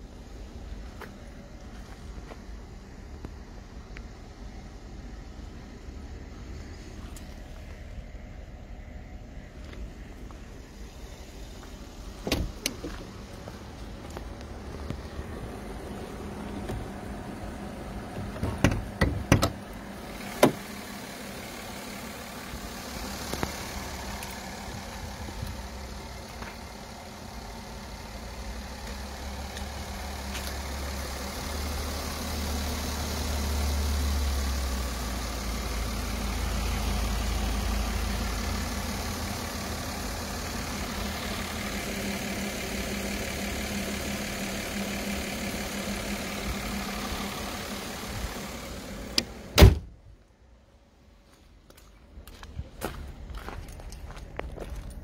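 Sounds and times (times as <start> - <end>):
car engine idling: 0.0 - 55.0
hood-release catch clicks: 12.2 - 12.9.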